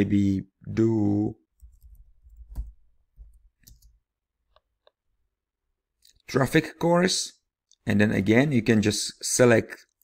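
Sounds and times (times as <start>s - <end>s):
computer keyboard keystrokes: 1.6s - 4.0s.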